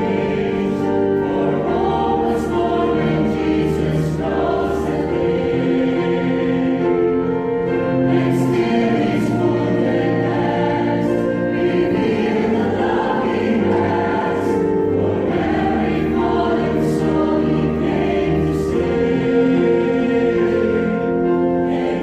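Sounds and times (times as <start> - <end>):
choir singing a hymn: 0.0 - 22.0
wind ensemble bass line: 0.0 - 22.0.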